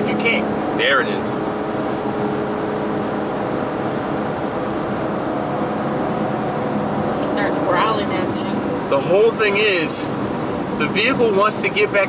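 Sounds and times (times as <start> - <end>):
car engine growling: 0.0 - 12.0
road noise: 0.0 - 12.0.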